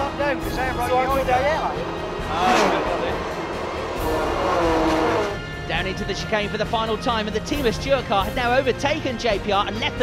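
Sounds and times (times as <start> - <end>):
race car passing by: 0.0 - 5.7
music: 0.0 - 10.0.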